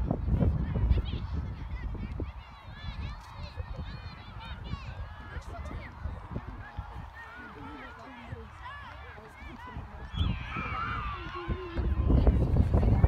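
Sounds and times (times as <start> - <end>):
wind rumbling on microphone: 0.0 - 13.0.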